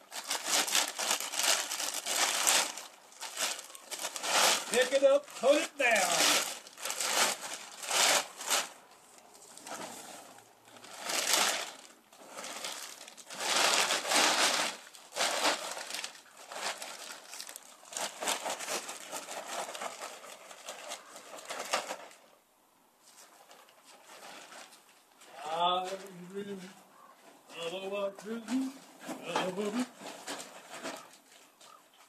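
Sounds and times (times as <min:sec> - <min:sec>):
plastic bag crinkling and rustling: 0:00.0 - 0:22.3, 0:23.1 - 0:27.1, 0:28.2 - 0:32.0.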